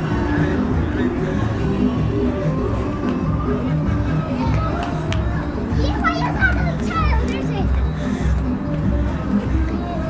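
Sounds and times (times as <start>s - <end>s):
music with repeating beat: 0.0s - 10.0s
children calling out: 1.9s - 8.2s.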